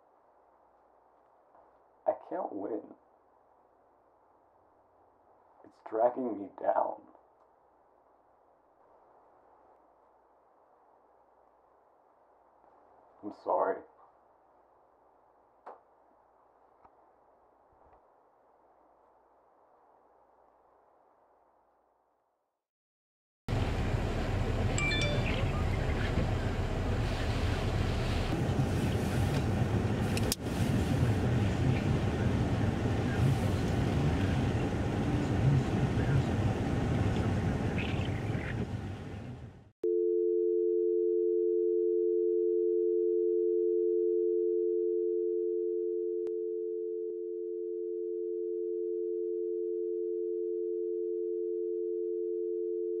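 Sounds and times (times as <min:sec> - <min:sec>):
telephone dial tone: 0:39.8 - 0:53.0.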